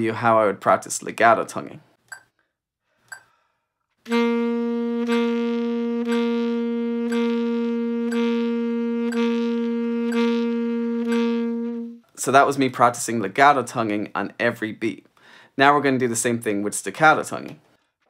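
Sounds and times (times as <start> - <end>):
metronome clicks: 3.1 - 3.3, 7.0 - 7.3
alto saxophone sustained note: 4.1 - 12.0.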